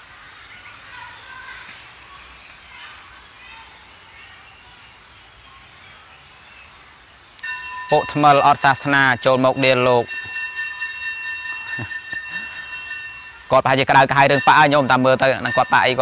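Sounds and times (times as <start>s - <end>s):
steady multi-pitch tone: 7.4s - 16.0s
man speaking: 7.9s - 10.1s, 13.5s - 16.0s.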